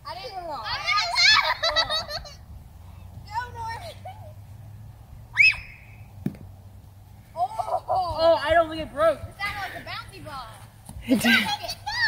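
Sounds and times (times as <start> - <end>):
children shouting and yelling: 0.0 - 2.2, 5.3 - 6.0, 7.4 - 12.0
dull thump: 6.2 - 6.5.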